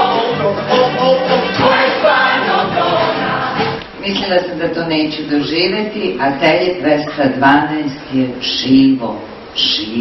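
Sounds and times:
cast singing in chorus: 0.0 - 3.8
musical accompaniment: 0.0 - 4.0.

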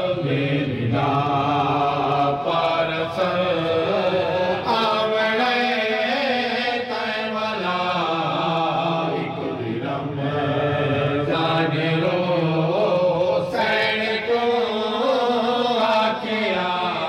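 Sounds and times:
man chanting a lament: 0.0 - 17.0.

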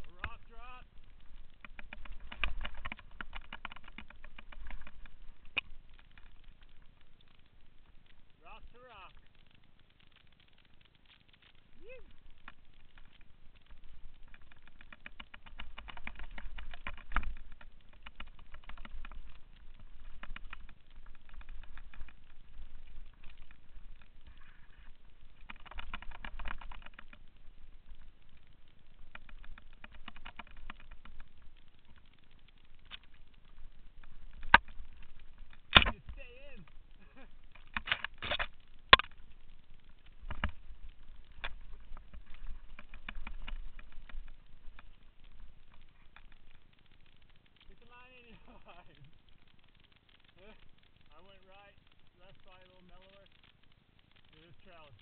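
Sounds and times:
bike rattling over rough ground: 0.0 - 55.0.

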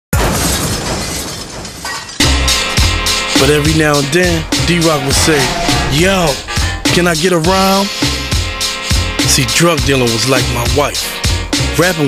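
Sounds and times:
loud crash: 3.7 - 8.0.

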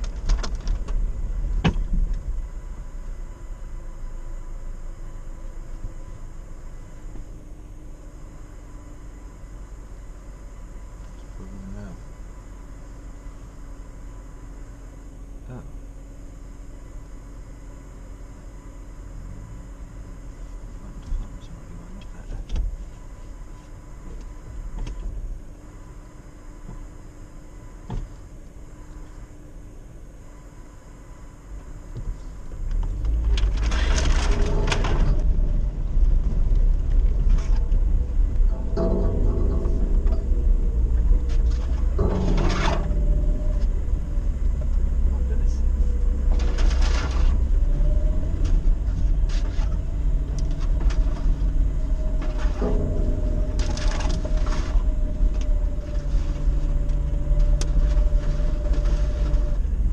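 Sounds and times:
off-road vehicle engine: 0.0 - 59.9.

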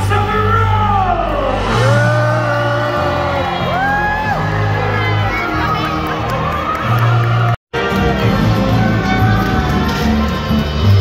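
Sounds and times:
arena show music with bass line: 0.0 - 11.0
voices whooping and cheering: 1.5 - 11.0.

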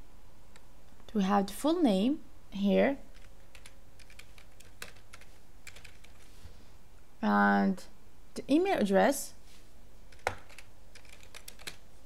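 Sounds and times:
computer keyboard key clicks: 3.2 - 6.2, 10.1 - 11.8.

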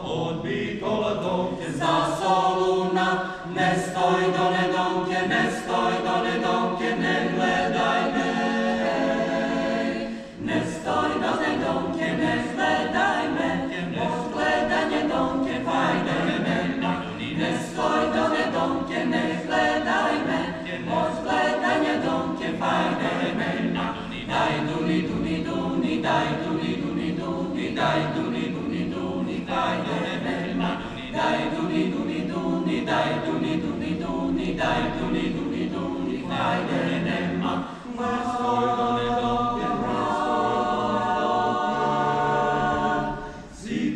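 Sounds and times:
mixed choir singing a cappella: 0.0 - 43.9.

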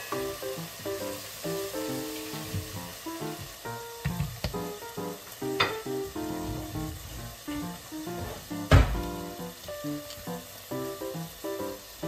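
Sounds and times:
food sizzling in a frying pan: 0.0 - 12.0
hard thud: 8.2 - 9.0.

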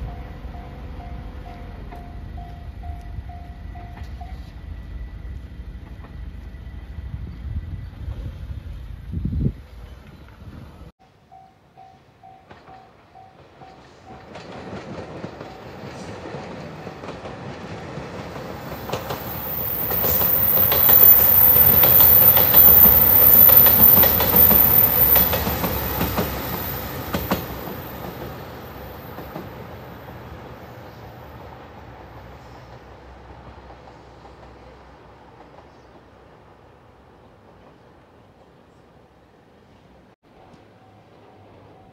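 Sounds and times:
diesel train passing: 0.0 - 10.0, 10.6 - 41.9
wheels clacking over rail joints: 12.2 - 30.6.

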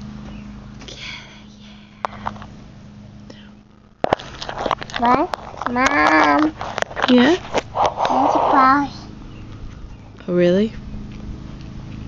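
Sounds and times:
steady low hum: 0.0 - 12.0
phone handling rustling and clicks: 4.0 - 7.7
person speaking: 5.0 - 9.1
faint breathy sounds: 7.7 - 9.1.

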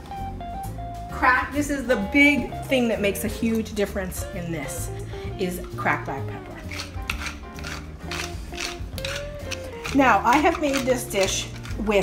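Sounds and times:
background music: 0.0 - 12.0
pepper mill grinding: 6.6 - 12.0.

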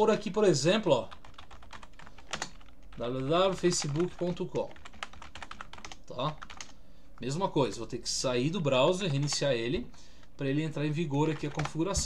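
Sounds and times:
computer keyboard typing: 1.0 - 7.3, 8.8 - 9.6, 11.2 - 12.0.

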